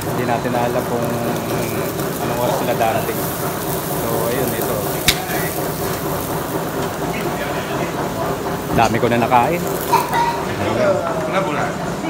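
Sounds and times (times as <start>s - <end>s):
meat sizzling on a grill: 0.0s - 12.0s.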